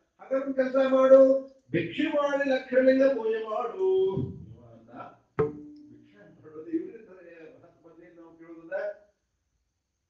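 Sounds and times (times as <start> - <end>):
man speaking: 0.2 - 5.1, 6.0 - 8.9.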